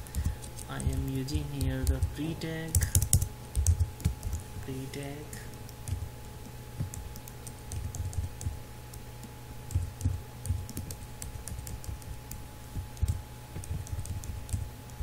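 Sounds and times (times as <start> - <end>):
keyboard typing: 0.0 - 15.0
low electrical hum: 0.0 - 15.0.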